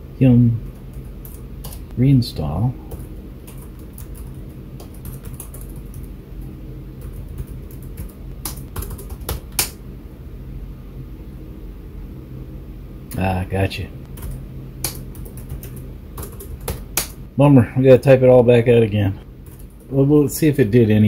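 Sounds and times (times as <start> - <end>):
steady low hum: 0.0 - 21.0
computer keyboard typing: 0.6 - 1.9, 2.9 - 9.8, 14.1 - 17.2, 19.4 - 19.9.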